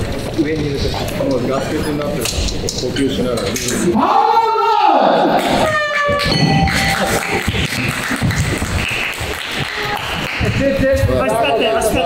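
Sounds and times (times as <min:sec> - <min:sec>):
crowd noise: 0:00.0 - 0:12.0
bell ringing: 0:05.9 - 0:07.5.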